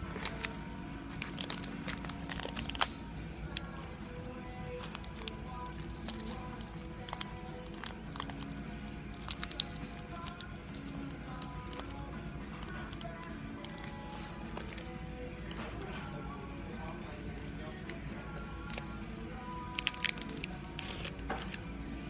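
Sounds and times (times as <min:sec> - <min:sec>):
foil wrapper crinkling and tearing: 0:00.0 - 0:16.0, 0:17.5 - 0:18.9, 0:19.5 - 0:21.6
quiet background music: 0:00.0 - 0:22.0.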